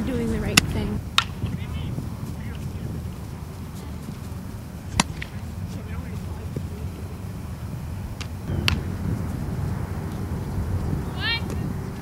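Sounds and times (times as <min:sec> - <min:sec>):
low outdoor rumble: 0:00.0 - 0:12.0
softball bat knocks: 0:04.9 - 0:05.4.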